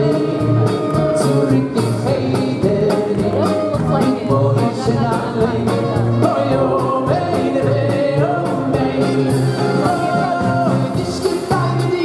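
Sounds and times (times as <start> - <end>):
live band playing: 0.0 - 12.0
man singing: 0.0 - 12.0.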